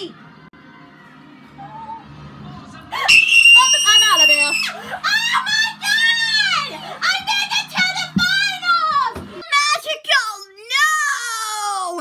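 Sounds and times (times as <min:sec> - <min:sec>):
child squealing and wailing: 0:03.1 - 0:06.7.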